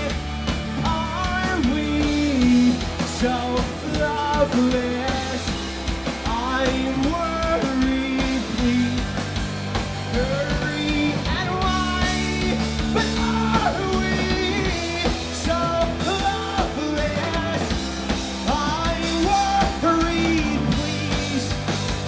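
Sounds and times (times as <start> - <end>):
rock band playing: 0.0 - 22.0.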